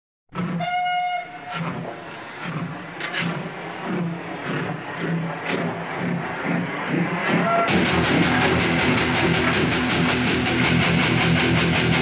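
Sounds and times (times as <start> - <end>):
rhythmic clatter of moving train: 0.4 - 10.9
train horn blast: 0.6 - 1.8, 7.3 - 7.8.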